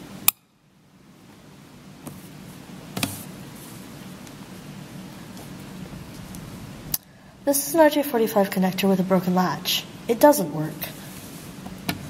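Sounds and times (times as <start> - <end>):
faint hiss: 1.0 - 12.0.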